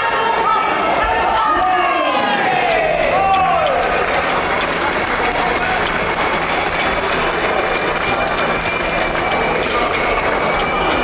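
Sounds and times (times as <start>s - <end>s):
voices calling out: 0.0s - 11.0s
audience applauding: 2.3s - 11.0s.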